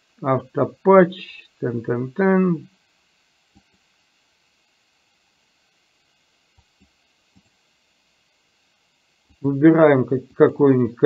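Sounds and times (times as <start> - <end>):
faint room hiss: 0.0 - 11.0.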